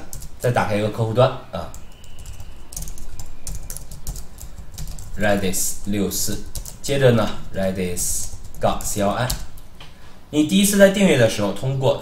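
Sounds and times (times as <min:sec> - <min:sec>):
typing on keyboard: 0:00.0 - 0:00.5, 0:01.7 - 0:07.4, 0:08.0 - 0:09.6.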